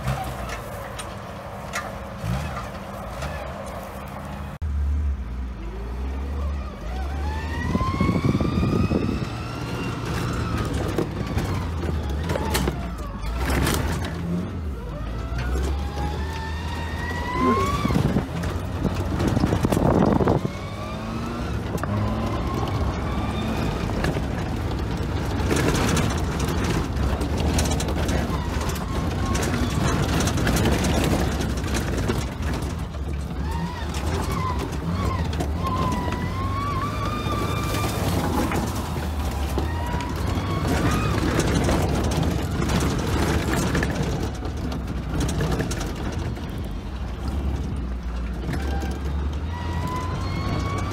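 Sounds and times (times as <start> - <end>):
car engine whining: 0.0 - 50.9.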